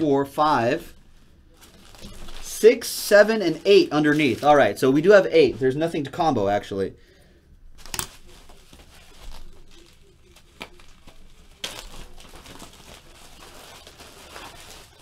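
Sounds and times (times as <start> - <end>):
plastic bag crinkling: 1.5 - 6.6, 7.8 - 15.0.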